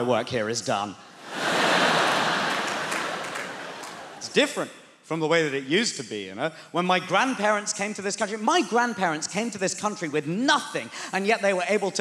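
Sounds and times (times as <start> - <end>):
audience clapping: 1.2 - 4.3
audience laughing: 1.2 - 4.3.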